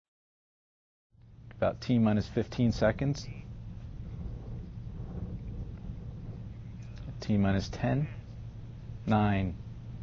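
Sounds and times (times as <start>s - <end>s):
low rumble with faint hiss: 1.2s - 10.0s.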